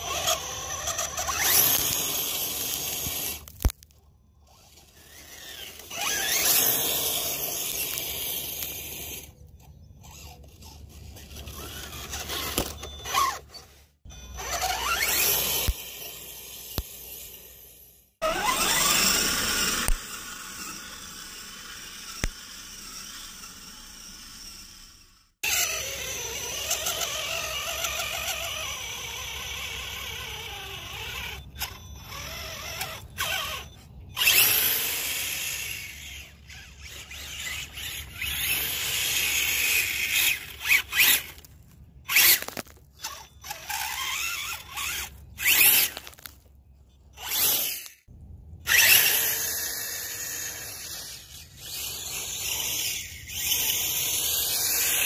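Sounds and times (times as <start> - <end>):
electric motor whining: 0.0 - 3.8, 4.4 - 41.5, 42.1 - 46.3, 47.2 - 48.1, 48.7 - 55.0.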